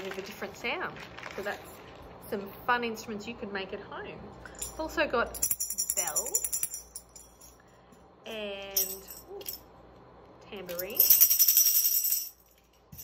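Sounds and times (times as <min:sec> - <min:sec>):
jingle bells shaken: 0:04.5 - 0:07.6, 0:10.7 - 0:13.0.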